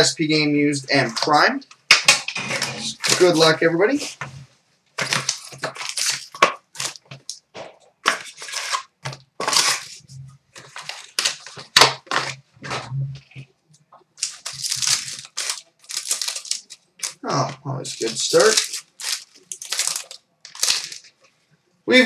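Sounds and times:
cardboard and wrapping tearing: 5.0s - 7.3s, 8.0s - 10.0s, 10.6s - 12.9s, 14.2s - 17.2s, 17.8s - 21.1s.

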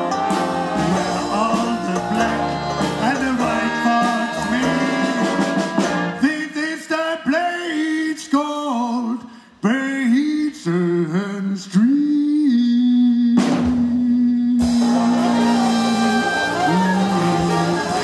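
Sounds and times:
lead horn with bent notes: 0.0s - 6.3s, 14.6s - 18.0s
jazz band playing: 0.0s - 6.4s, 14.6s - 18.0s.

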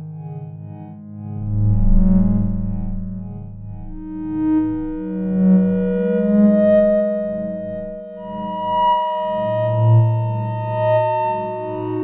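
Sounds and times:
synthesizer sustained pure tones: 0.0s - 12.0s.

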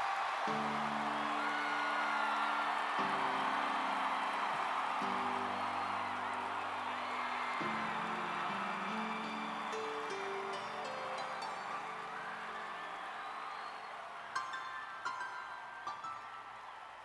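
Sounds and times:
crowd cheering and whistling: 0.0s - 17.0s.

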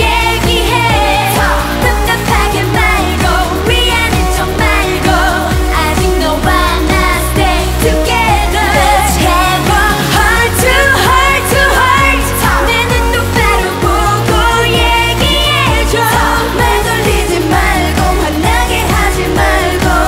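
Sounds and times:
pop backing track: 0.0s - 20.0s
woman singing: 0.0s - 20.0s.

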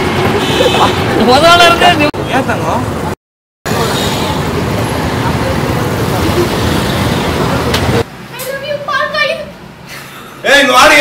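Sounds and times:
street traffic rush: 0.0s - 11.0s.

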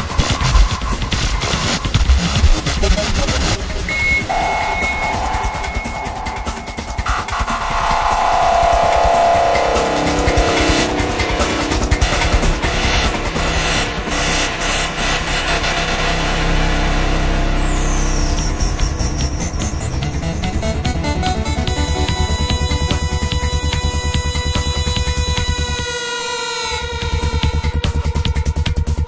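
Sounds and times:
electronic dance music: 2.2s - 25.4s
high synth sweep: 2.7s - 25.2s
synth tone gliding downward: 4.0s - 24.8s.

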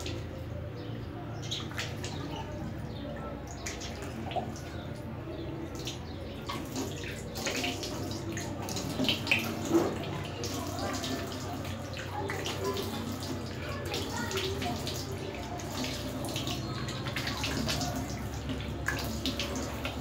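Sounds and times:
water splashing on face: 1.4s - 20.0s
tap water running into sink: 5.7s - 20.0s.

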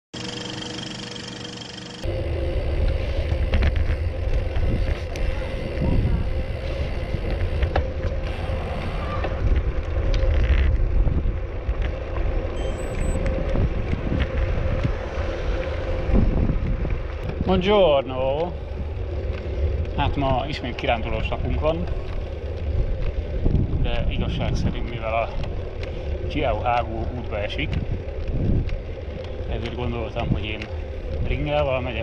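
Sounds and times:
bicycle road noise: 0.2s - 32.0s
wind buffeting microphone: 2.0s - 32.0s.

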